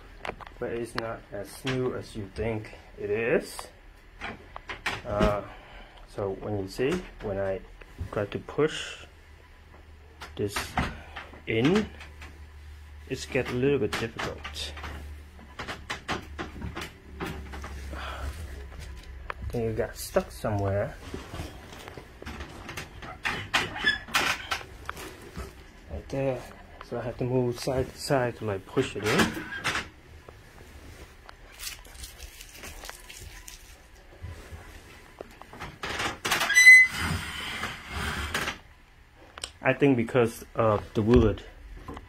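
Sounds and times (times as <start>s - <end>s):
short high squeak: 36.5s - 37.1s.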